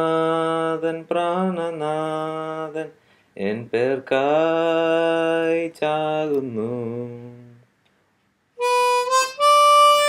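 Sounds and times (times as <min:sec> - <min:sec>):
man singing a hymn unaccompanied: 0:00.0 - 0:07.7.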